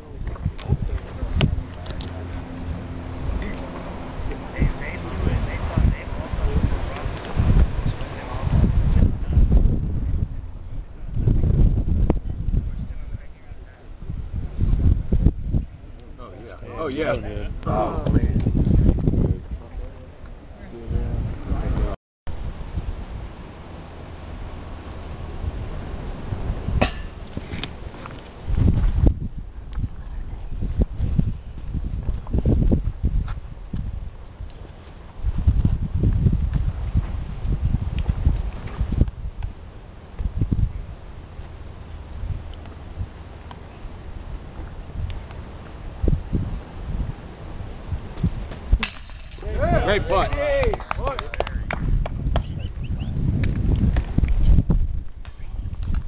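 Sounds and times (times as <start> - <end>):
low outdoor rumble: 0.0 - 56.0
sharp clink: 26.8 - 27.3, 48.8 - 49.5.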